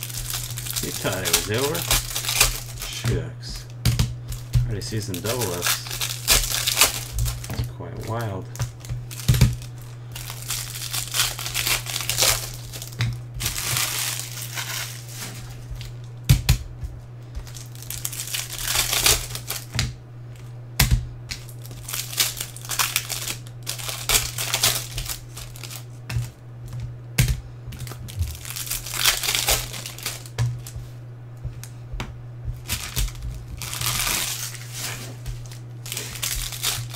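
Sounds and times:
plastic wrappers crinkling: 0.0 - 16.2, 17.4 - 19.8, 21.4 - 26.4, 27.8 - 30.9, 32.5 - 36.9
steady low hum: 0.0 - 36.9.

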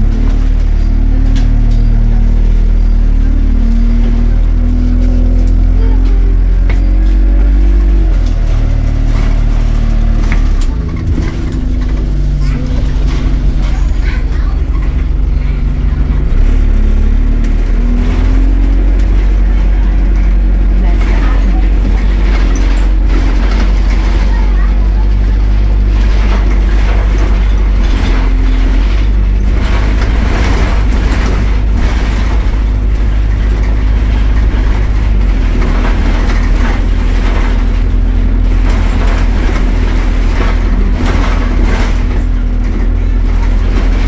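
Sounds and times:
bus engine running: 0.0 - 44.0.

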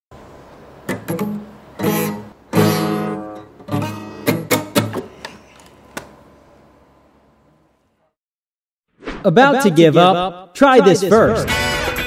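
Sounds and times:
guitar chords strummed: 0.8 - 5.0.

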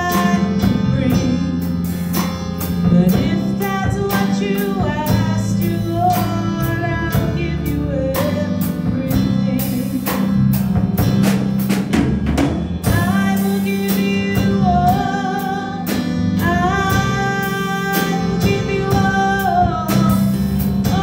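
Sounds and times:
steady drum beat: 0.0 - 21.0.

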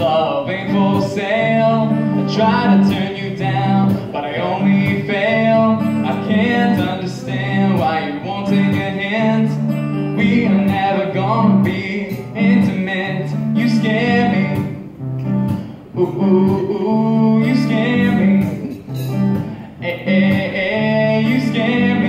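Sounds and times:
man singing: 0.0 - 15.0, 15.8 - 22.0
acoustic guitar strumming: 0.0 - 22.0.

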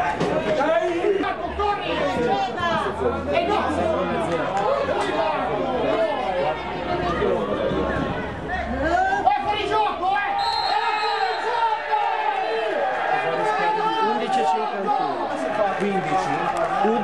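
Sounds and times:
crowd chatter and shouting: 0.0 - 17.0.

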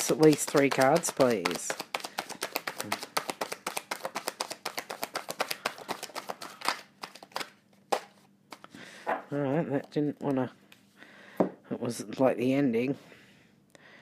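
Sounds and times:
cards being shuffled: 0.0 - 8.7.

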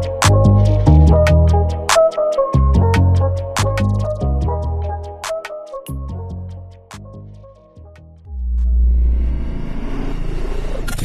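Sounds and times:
deep bass rumble: 6.0 - 11.0
whoosh of noise: 8.4 - 11.0.

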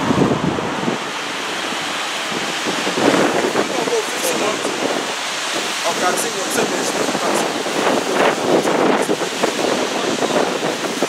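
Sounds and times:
wind on microphone: 0.0 - 11.0
faint voices: 3.2 - 7.6.

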